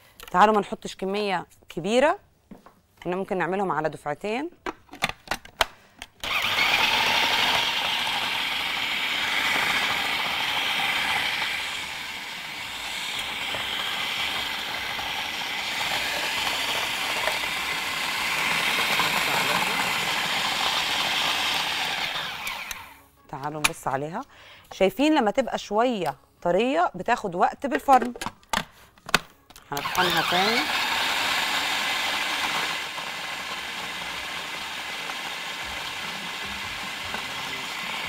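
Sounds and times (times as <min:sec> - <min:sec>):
food processor grinding: 0:06.2 - 0:23.0, 0:29.8 - 0:38.0.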